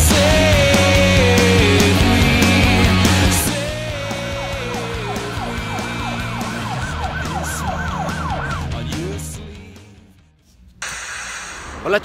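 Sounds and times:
background music with low bass: 0.0s - 10.3s
siren-like yelping tone: 4.1s - 8.8s.

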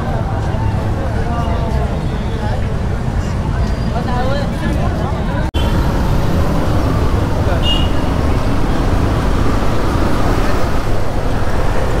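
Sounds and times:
surrounding traffic: 0.0s - 12.0s.

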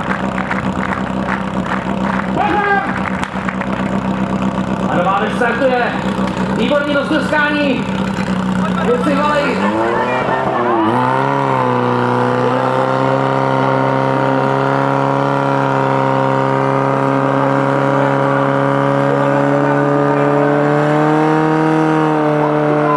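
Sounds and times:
pump engine running: 0.0s - 22.9s.

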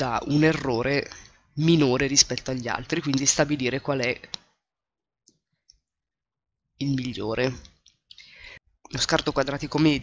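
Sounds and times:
computer mouse clicks: 2.2s - 4.6s.

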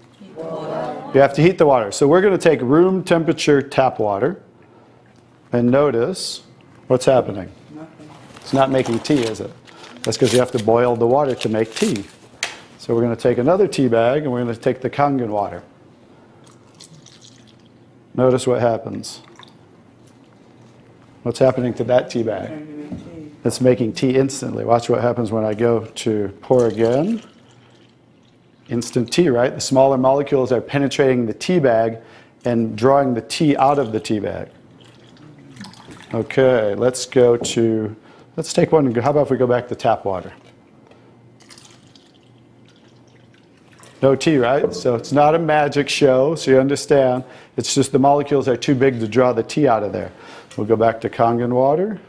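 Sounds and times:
water trickling into plastic cup: 16.4s - 17.8s, 19.2s - 20.7s, 26.6s - 29.1s, 34.7s - 36.3s, 41.4s - 44.0s
water dripping: 34.8s - 36.2s, 41.4s - 44.0s.

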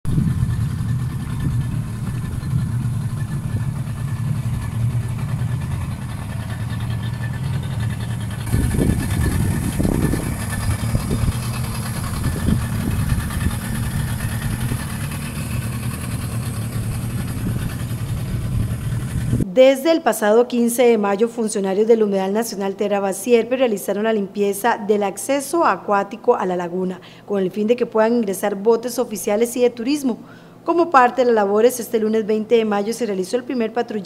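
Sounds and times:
boat motor droning: 0.0s - 19.4s.

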